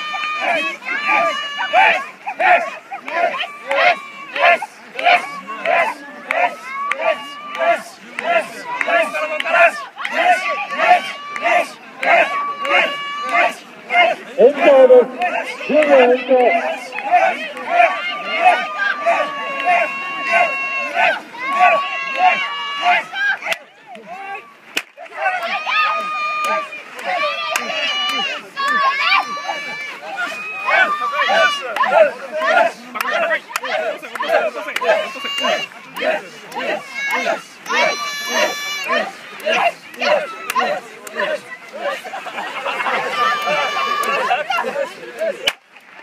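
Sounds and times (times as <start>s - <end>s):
people calling out encouragement: 0.0s - 45.6s
team shouting rhythmic chant: 0.0s - 45.6s.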